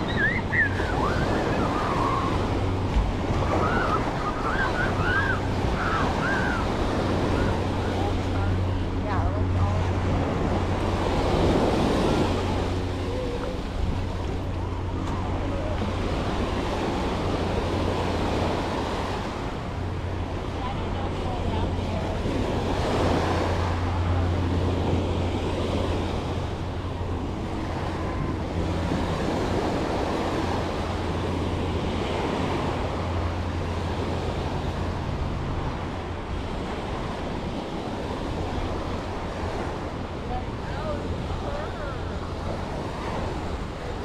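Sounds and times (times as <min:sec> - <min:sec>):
ocean waves washing onto beach: 0:00.0 - 0:44.0
wind rumbling on microphone: 0:00.0 - 0:44.0.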